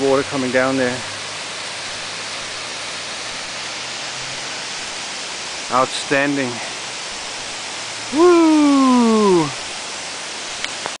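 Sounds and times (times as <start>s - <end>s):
water rushing down gorge: 0.0s - 11.0s
man whooping: 8.1s - 9.6s.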